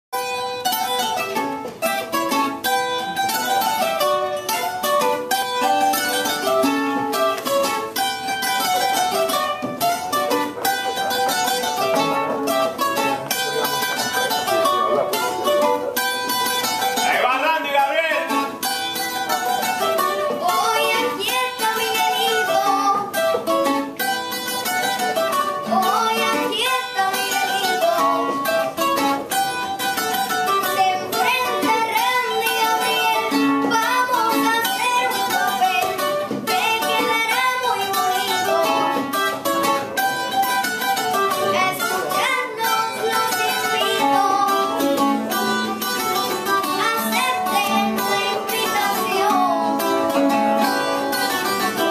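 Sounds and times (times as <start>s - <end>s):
cuatro picking fast melody: 0.1s - 51.9s
string instrument accompanying: 0.2s - 51.9s.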